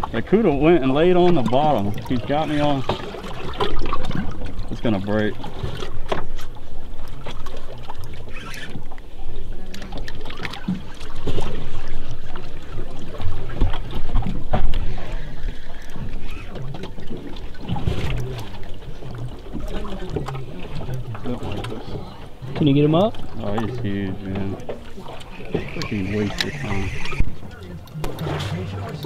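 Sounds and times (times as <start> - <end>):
water against boat hull: 0.0 - 29.0
clicks and knocks from fishing gear: 5.4 - 9.0.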